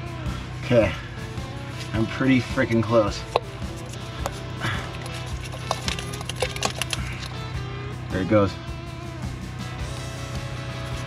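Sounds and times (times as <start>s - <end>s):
background music: 0.0s - 11.0s
rock and grit crumbling: 1.8s - 7.6s.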